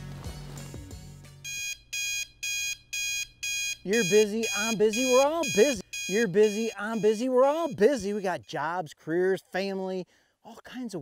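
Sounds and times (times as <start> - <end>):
music: 0.0 - 1.5
alarm clock beeping: 1.4 - 8.8.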